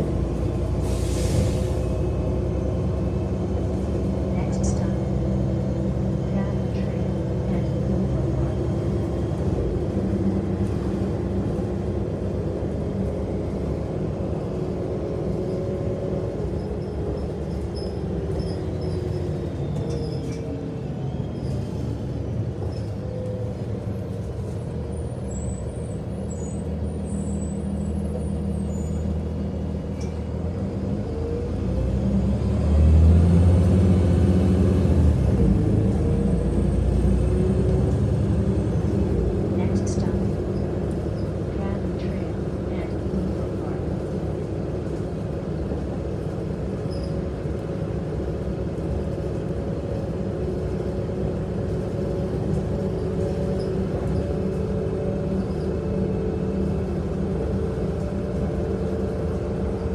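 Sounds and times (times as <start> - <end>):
bus engine running: 0.0 - 59.9
road noise: 0.0 - 59.9.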